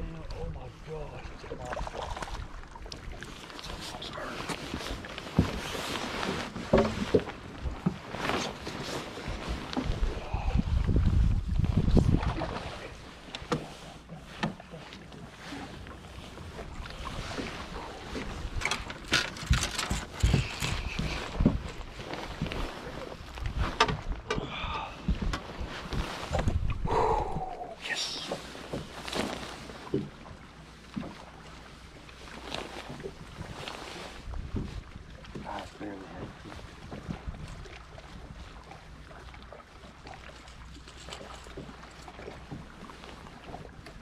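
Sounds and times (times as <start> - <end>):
knocks and clicks on boat deck: 6.6 - 8.0, 13.3 - 15.1, 18.1 - 21.7, 23.7 - 25.5, 29.8 - 30.3
wind gusts on microphone: 7.6 - 13.0, 19.4 - 27.8.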